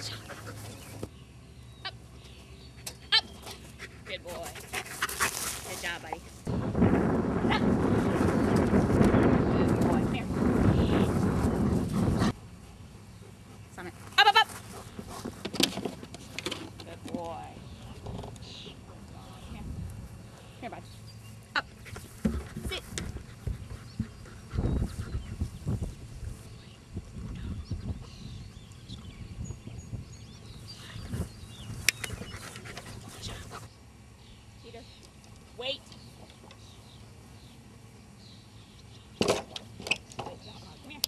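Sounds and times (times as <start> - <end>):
dog panting: 3.5 - 5.7, 23.0 - 25.4
wind rumbling on microphone: 5.8 - 12.5, 17.2 - 21.2, 21.8 - 33.6.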